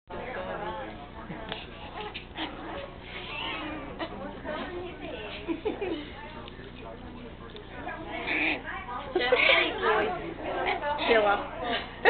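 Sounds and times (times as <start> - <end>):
puppy growling: 1.5 - 4.3, 7.9 - 8.7.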